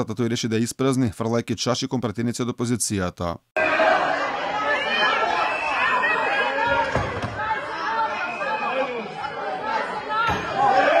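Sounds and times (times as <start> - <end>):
men shouting in argument: 3.6 - 11.0.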